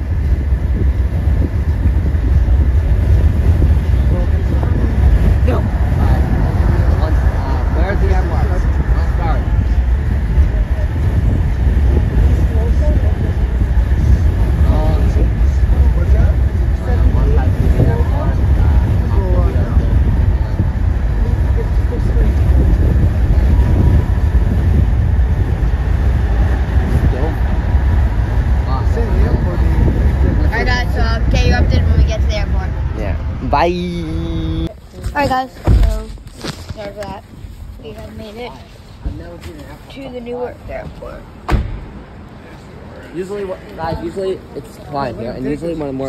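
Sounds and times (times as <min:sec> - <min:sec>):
road and wind noise: 0:00.0 - 0:46.0
voices in car: 0:00.7 - 0:36.2.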